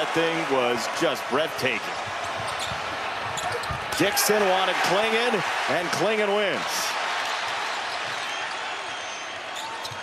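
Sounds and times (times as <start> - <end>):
arena crowd noise: 0.0 - 10.0
sneaker squeaks: 2.4 - 2.8, 9.5 - 10.0.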